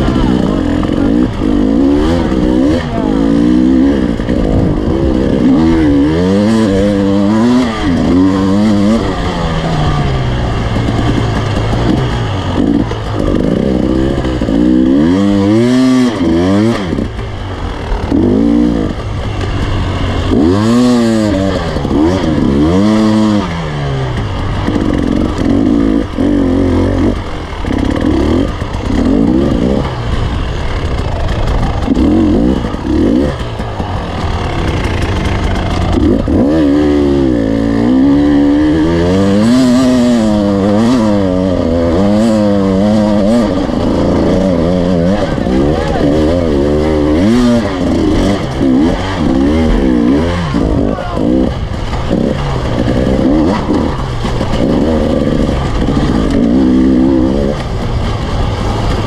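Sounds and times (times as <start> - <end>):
motorcycle engine revving: 0.0 - 59.0.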